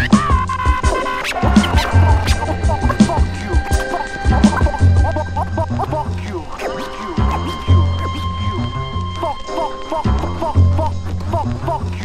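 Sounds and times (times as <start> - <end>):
sliding pitched sample lines: 0.0 - 12.0
turntable scratching: 0.0 - 12.0.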